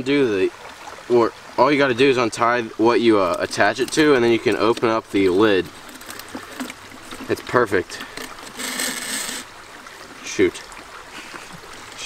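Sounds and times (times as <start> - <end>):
water splashing from plastic trap: 2.8 - 9.5.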